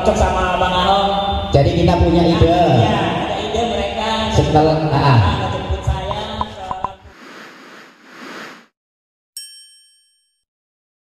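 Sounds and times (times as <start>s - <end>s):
bright bell-like ding: 9.4s - 10.4s.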